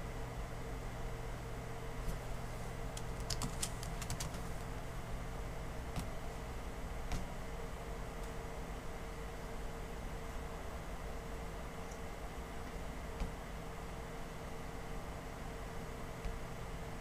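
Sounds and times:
low steady hum: 0:00.0 - 0:17.0
laptop keyboard typing: 0:02.9 - 0:04.6.

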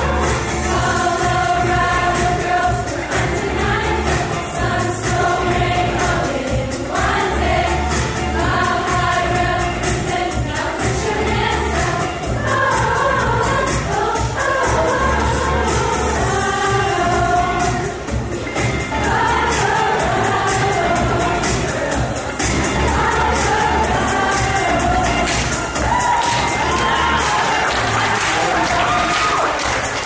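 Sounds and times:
accompaniment with bass line: 0:00.0 - 0:30.0
choir singing in harmony: 0:00.0 - 0:30.0.

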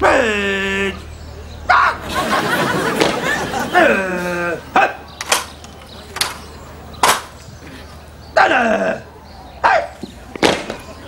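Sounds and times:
man shouting drawn-out commands: 0:00.0 - 0:01.0, 0:03.7 - 0:05.1, 0:08.4 - 0:10.0
soft scattered noise: 0:00.7 - 0:08.4
sharp thump: 0:10.4 - 0:10.9.

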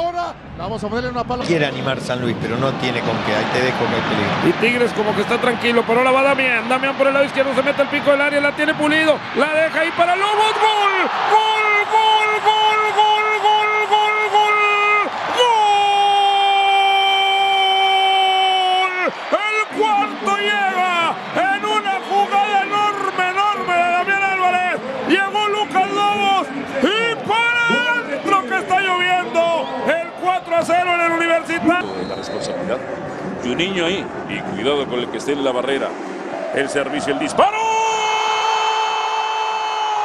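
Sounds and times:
man shouting goal cry: 0:09.9 - 0:29.4
excited shouted calling: 0:10.1 - 0:29.4.

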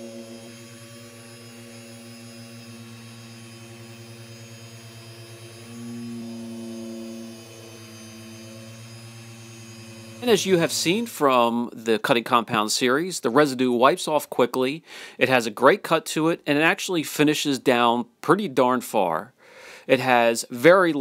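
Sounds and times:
polisher humming with rapid flutter: 0:00.0 - 0:11.4.

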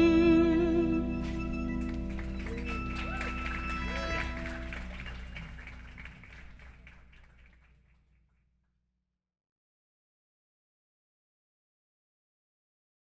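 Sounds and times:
live band chord ringing: 0:00.0 - 0:06.2
audience clapping and cheering: 0:01.2 - 0:08.1.

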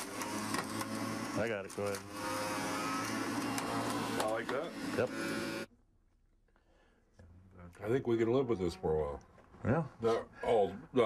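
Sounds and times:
electric juicer humming: 0:00.0 - 0:05.7.

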